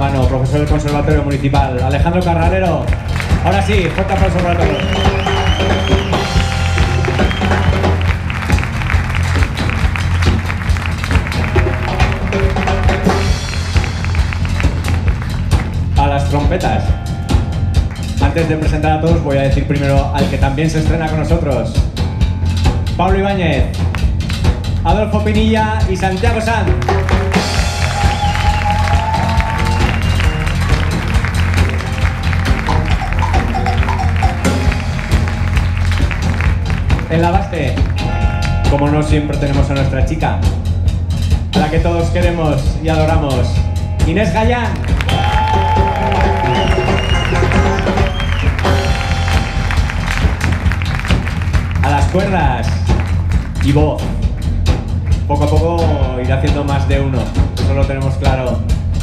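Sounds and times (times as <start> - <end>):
bass line: 0.0 - 59.0
drum strokes: 0.0 - 59.0
live band playing a groove: 0.0 - 59.0
short horn phrases: 2.8 - 9.7, 45.0 - 52.9
trumpet holding high note: 45.1 - 51.3.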